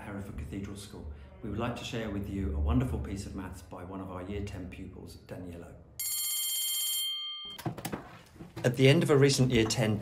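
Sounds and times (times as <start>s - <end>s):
electric bell ringing: 6.0s - 7.6s.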